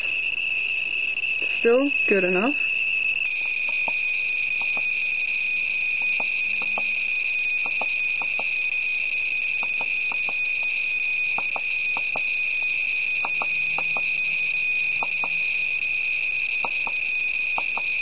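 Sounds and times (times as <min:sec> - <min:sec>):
high-pitched electronic beeper tone: 0:00.0 - 0:18.0
geiger counter clicks: 0:03.2 - 0:05.1, 0:05.7 - 0:08.7, 0:09.5 - 0:15.7, 0:16.5 - 0:18.0.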